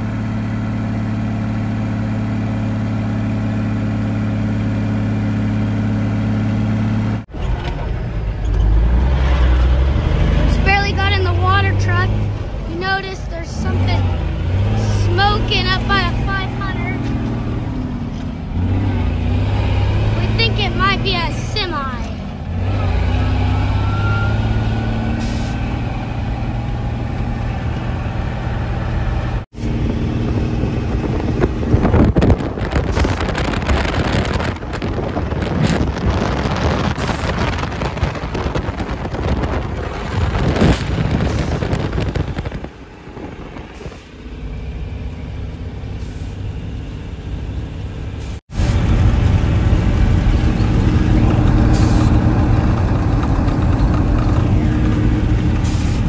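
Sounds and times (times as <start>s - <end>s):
truck engine humming: 0.0s - 35.5s, 36.1s - 56.0s
road rumble and rattling: 0.0s - 56.0s
wind: 0.0s - 56.0s.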